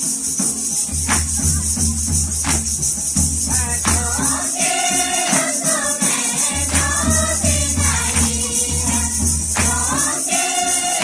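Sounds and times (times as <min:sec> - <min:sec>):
jingling percussion: 0:00.0 - 0:11.0
women and girls singing a hymn: 0:03.5 - 0:11.0.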